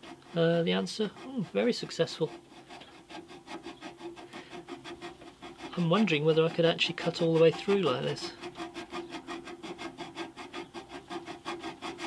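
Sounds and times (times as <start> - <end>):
hand file rasping on steel: 0.0 - 12.0.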